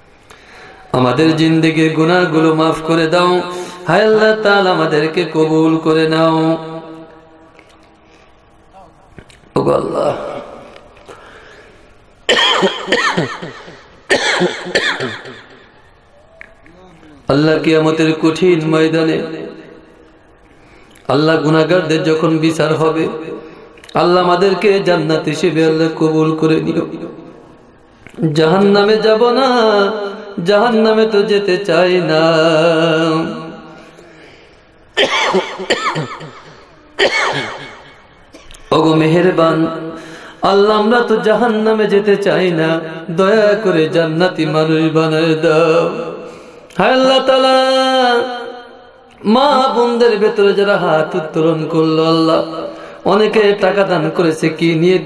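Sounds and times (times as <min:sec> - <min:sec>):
man chanting prayer: 0:00.8 - 0:07.4, 0:08.7 - 0:10.9, 0:16.7 - 0:19.9, 0:21.1 - 0:27.5, 0:28.2 - 0:34.2, 0:38.7 - 0:55.0
cough-like vocal burst with echo: 0:12.3 - 0:15.6, 0:35.0 - 0:38.7
man sobbing: 0:12.4 - 0:15.6, 0:35.0 - 0:37.9.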